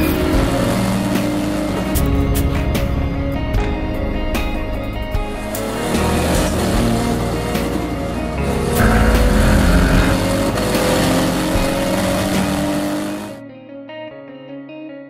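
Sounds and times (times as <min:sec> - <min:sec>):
race car engine at full throttle: 0:00.0 - 0:13.4.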